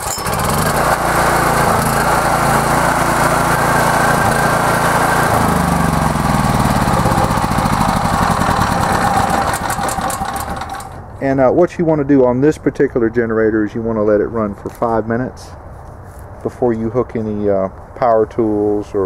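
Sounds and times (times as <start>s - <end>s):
generator engine running: 0.0s - 11.1s.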